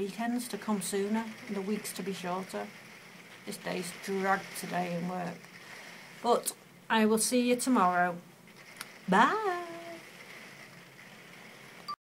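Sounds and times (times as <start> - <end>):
faint room tone hiss: 0.0 - 12.0.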